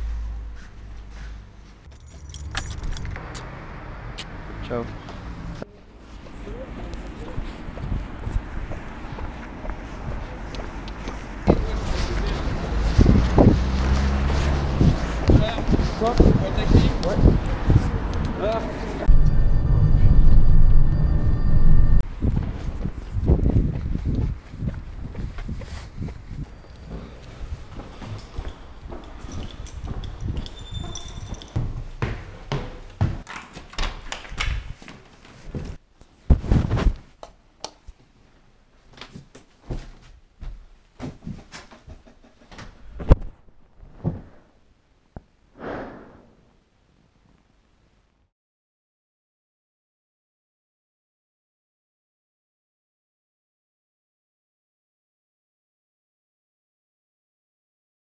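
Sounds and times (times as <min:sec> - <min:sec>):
footsteps walking: 0:00.0 - 0:03.5, 0:05.0 - 0:18.3, 0:22.2 - 0:33.7, 0:34.6 - 0:37.2, 0:37.8 - 0:41.6
faint high clinks: 0:01.9 - 0:03.2, 0:28.2 - 0:31.7
keys jangling: 0:01.9 - 0:03.2, 0:28.2 - 0:31.8
steady low rumble: 0:14.3 - 0:26.6.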